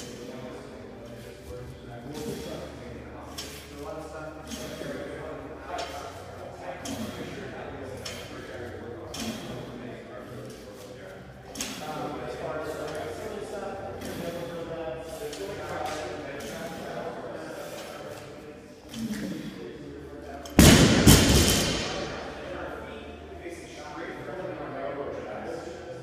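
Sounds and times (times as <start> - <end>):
voices echoing in a hall: 0.0 - 26.0.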